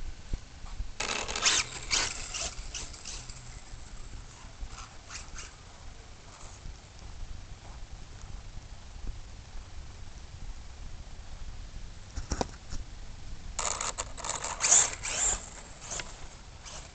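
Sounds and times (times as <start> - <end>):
toy car driving on grass: 1.0 - 6.7, 13.5 - 16.9.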